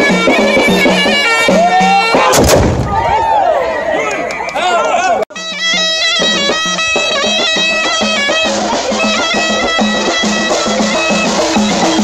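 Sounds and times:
crowd crying out: 0:01.2 - 0:05.3
musket volley blast: 0:01.9 - 0:03.3.

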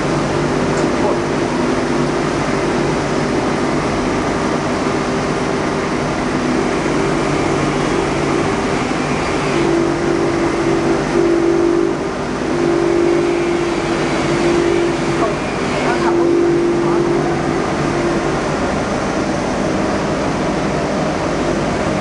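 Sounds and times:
wire-brush wheel motor humming: 0:00.0 - 0:22.0.

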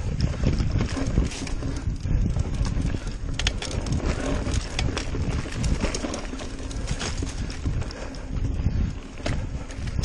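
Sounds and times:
bike rattling over bumps: 0:00.0 - 0:10.0
wind: 0:00.0 - 0:10.0.

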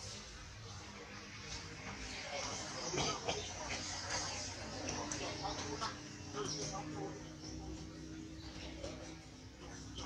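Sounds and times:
outdoor noise: 0:00.0 - 0:10.0.

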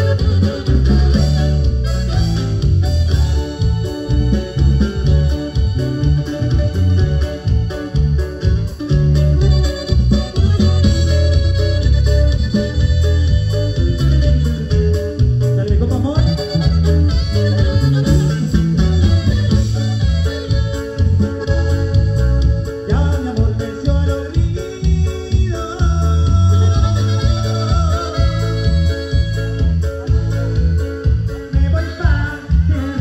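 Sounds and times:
loud live band dance music: 0:00.0 - 0:33.0.

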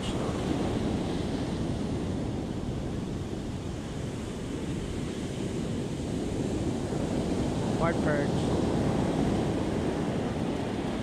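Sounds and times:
ocean surf breaking on beach: 0:00.0 - 0:11.0
wind buffeting microphone: 0:00.0 - 0:11.0.

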